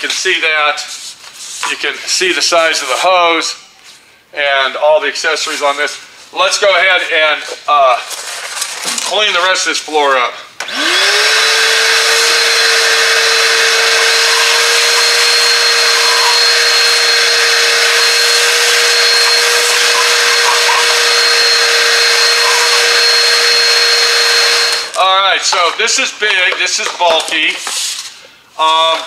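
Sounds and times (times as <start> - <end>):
shop vacuum running: 10.6 - 25.9.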